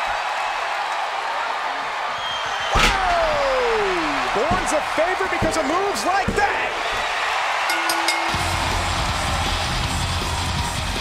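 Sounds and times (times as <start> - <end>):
crowd cheering: 0.0 - 11.0
rock music with heavy bass and drums: 8.4 - 11.0.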